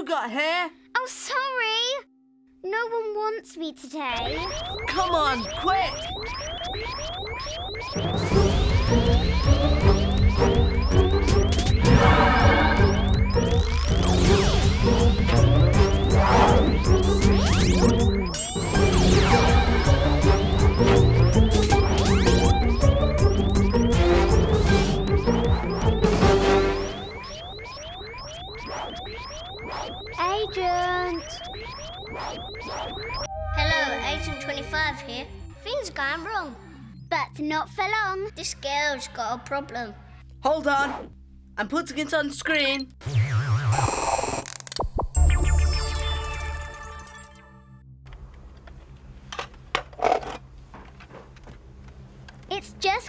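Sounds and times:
cartoon background music: 0:00.0 - 0:44.1, 0:44.9 - 0:47.8
rising electronic chirps: 0:04.0 - 0:37.2, 0:43.0 - 0:47.6.

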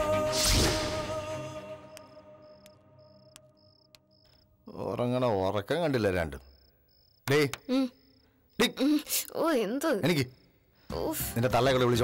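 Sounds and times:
crickets chirping: 0:01.2 - 0:11.7
person speaking: 0:07.2 - 0:11.3.

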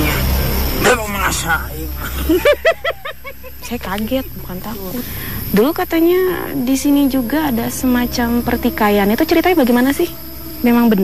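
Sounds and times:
woman speaking: 0:03.6 - 0:11.0.

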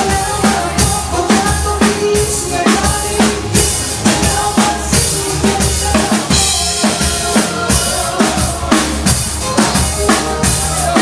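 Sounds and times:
song with drum beat: 0:00.0 - 0:11.0.

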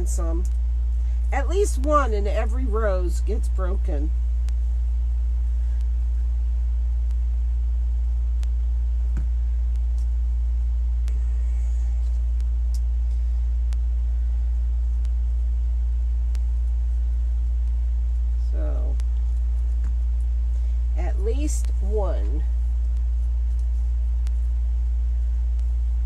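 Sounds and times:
steady low hum: 0:00.0 - 0:26.0
faint clicks: 0:08.4 - 0:10.2, 0:11.0 - 0:11.3, 0:16.3 - 0:16.8, 0:17.4 - 0:20.3, 0:21.6 - 0:24.6.

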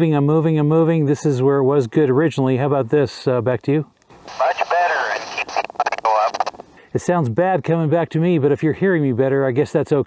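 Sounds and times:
hissy radio voice: 0:04.3 - 0:06.6.

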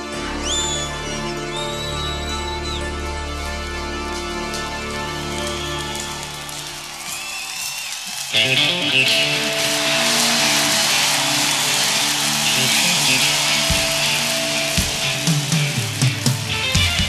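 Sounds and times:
crowd noise: 0:00.0 - 0:17.0
live rock band with electric guitars: 0:00.0 - 0:17.0.

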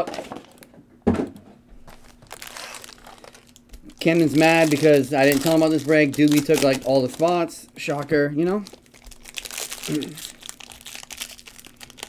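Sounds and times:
foil wrappers crinkling: 0:01.8 - 0:12.0.

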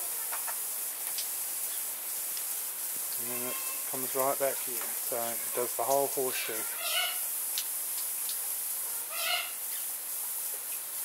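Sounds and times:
misting nozzles hissing: 0:00.9 - 0:11.0
parrot call: 0:06.6 - 0:07.2, 0:09.1 - 0:09.6.

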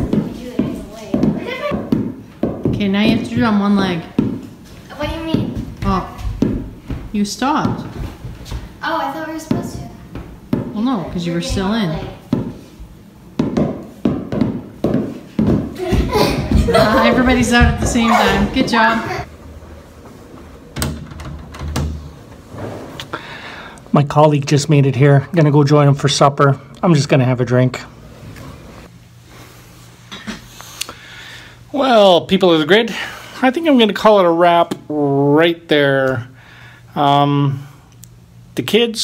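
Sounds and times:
basketballs bouncing on hardwood floor: 0:00.0 - 0:19.3
child's voice: 0:08.8 - 0:10.0
sharp knocks: 0:13.4 - 0:16.6.

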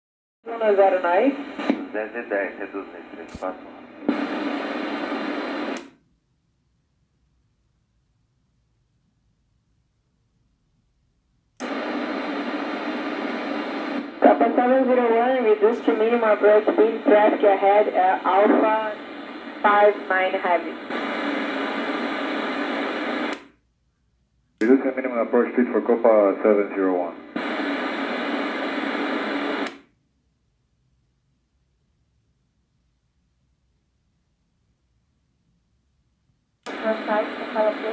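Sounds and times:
radio speaker hiss: 0:00.5 - 0:05.9, 0:11.6 - 0:23.4, 0:24.6 - 0:29.8, 0:36.7 - 0:37.9.

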